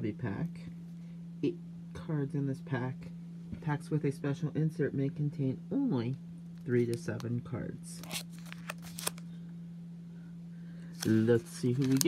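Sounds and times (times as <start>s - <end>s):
foil wrapper crinkling: 8.0s - 9.2s, 11.0s - 12.0s.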